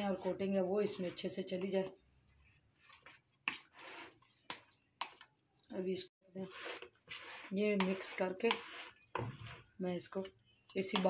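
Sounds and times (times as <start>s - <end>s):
wet stirring: 0.0s - 5.7s, 6.3s - 11.0s.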